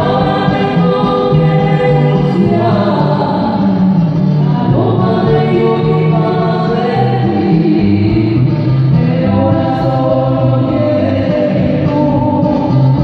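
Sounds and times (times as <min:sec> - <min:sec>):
acoustic guitar: 0:00.0 - 0:13.0
people singing: 0:00.0 - 0:13.0.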